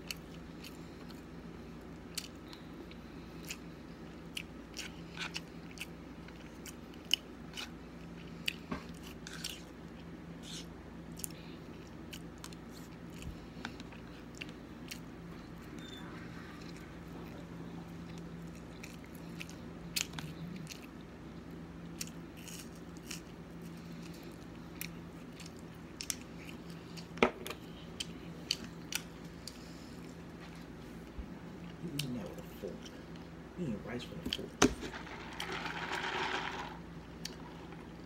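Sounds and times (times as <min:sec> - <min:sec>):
person chewing and smacking food: 0:00.0 - 0:15.6, 0:16.6 - 0:32.2
low background hum: 0:00.0 - 0:38.0.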